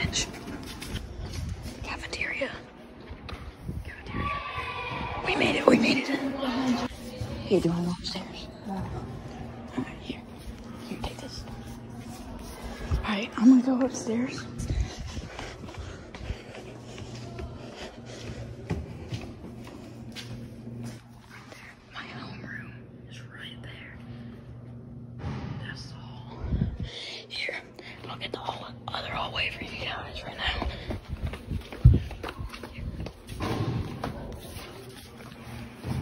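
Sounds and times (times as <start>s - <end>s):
footsteps: 0.0s - 21.9s, 26.6s - 36.0s
steady low hum: 0.0s - 36.0s
hushed whispering: 1.7s - 2.8s, 21.3s - 24.4s.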